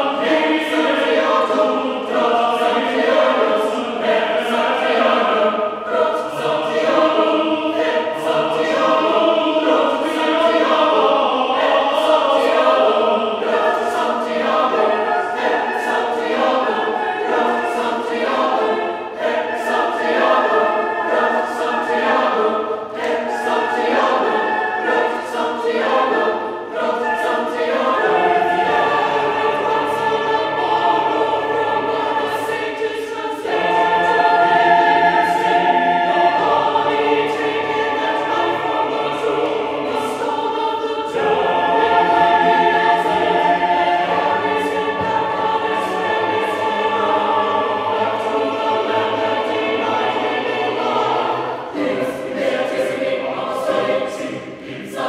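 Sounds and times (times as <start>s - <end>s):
mixed choir singing unaccompanied: 0.0s - 55.0s.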